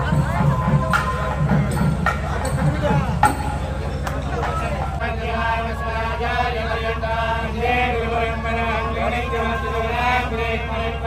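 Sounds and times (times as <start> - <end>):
low background hum: 0.0 - 11.0
men chanting in unison: 0.0 - 11.0.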